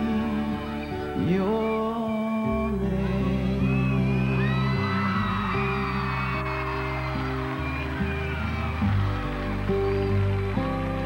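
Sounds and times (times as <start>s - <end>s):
acoustic guitar ballad: 0.0s - 11.0s
audience whooping: 3.5s - 11.0s.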